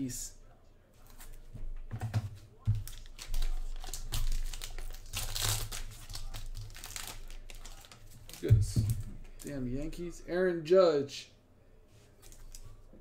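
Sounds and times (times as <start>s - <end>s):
plastic wrapper crinkling: 2.8s - 9.6s.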